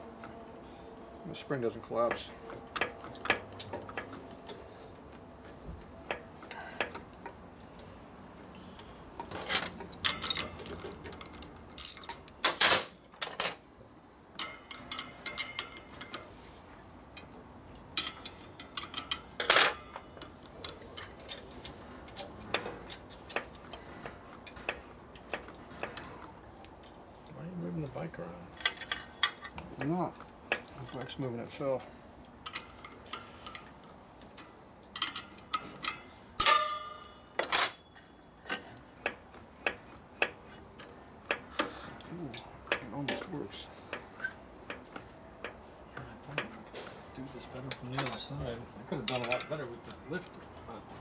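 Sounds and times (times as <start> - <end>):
metal tools clinking and tapping: 9.2 - 13.6, 14.4 - 16.3, 17.9 - 23.5, 32.4 - 40.4, 49.0 - 50.0.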